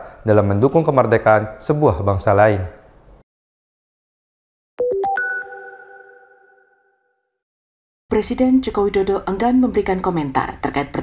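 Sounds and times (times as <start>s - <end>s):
electronic chime: 4.8s - 7.2s.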